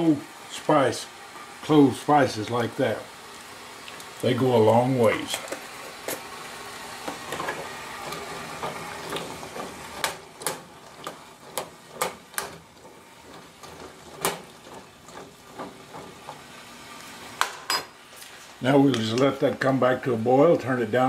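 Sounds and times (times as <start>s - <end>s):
faint steady hiss: 0.0s - 8.0s, 16.3s - 21.0s.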